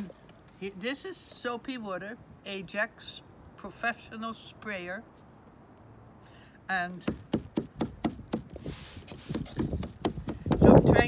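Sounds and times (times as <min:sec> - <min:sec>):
spray bottle hiss: 0:08.6 - 0:09.9.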